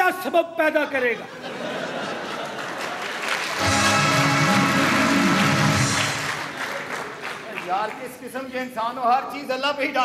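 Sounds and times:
audience applause: 2.3s - 8.1s
recorded music: 3.5s - 6.6s.

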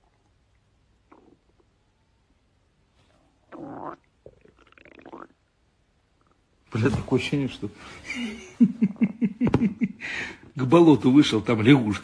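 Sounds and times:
stomach gurgling: 0.0s - 1.8s, 3.4s - 5.5s.

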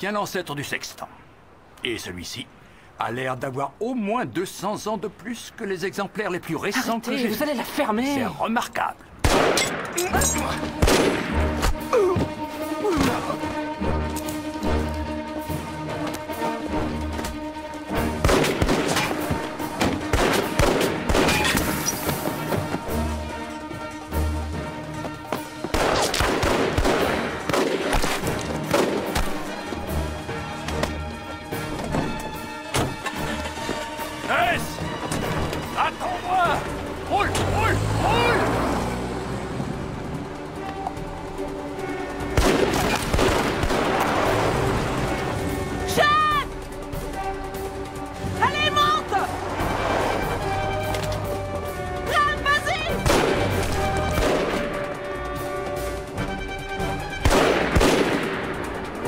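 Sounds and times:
action music score: 3.5s - 59.0s
rifle gunfire: 9.2s - 9.8s, 25.7s - 29.2s, 42.4s - 44.0s, 57.2s - 58.4s
people shouting: 35.7s - 38.6s, 45.8s - 46.6s, 48.4s - 49.6s, 52.0s - 53.0s.

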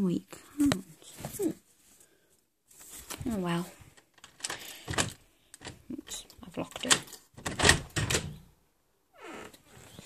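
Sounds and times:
door handle and lock clicking: 6.8s - 8.4s.

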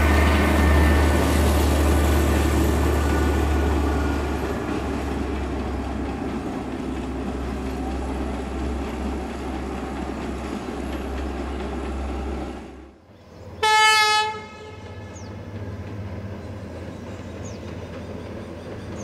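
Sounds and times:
train rumbling: 0.0s - 19.0s
train horn blast: 13.6s - 15.3s
bird chirps: 16.3s - 19.0s.

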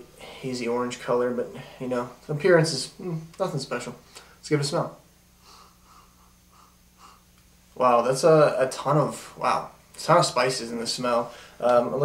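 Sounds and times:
person sniffing: 5.4s - 7.3s.

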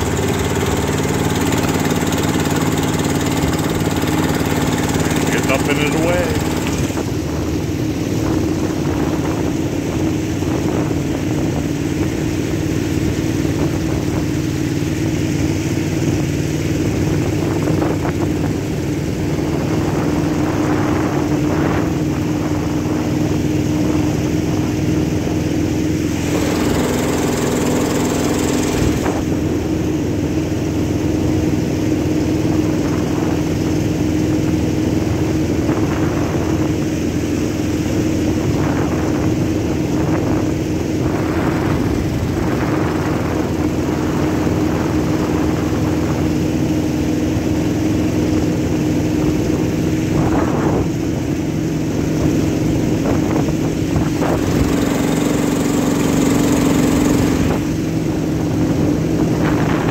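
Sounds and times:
outboard motor drone: 0.0s - 59.9s.

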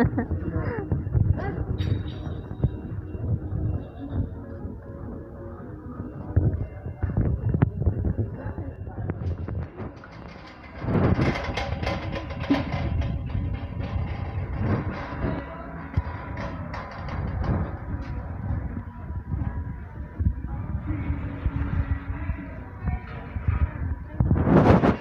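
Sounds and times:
supermarket noise: 0.0s - 25.0s.

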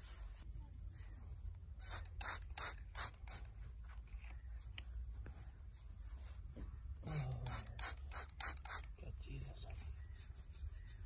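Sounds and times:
spray bottle squirting water: 1.8s - 3.4s, 7.1s - 8.9s.

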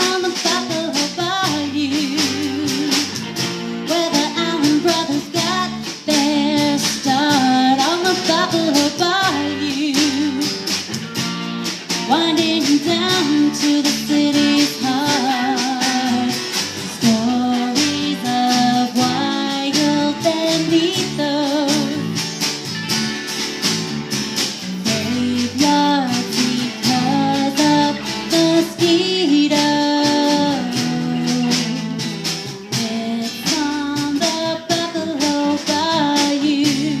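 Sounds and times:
woman singing: 0.0s - 10.9s, 11.9s - 22.4s, 24.5s - 37.0s
bass guitar: 0.0s - 37.0s
electric guitar: 0.0s - 37.0s
steady drum beat: 0.0s - 37.0s
strummed acoustic guitar: 0.0s - 37.0s.

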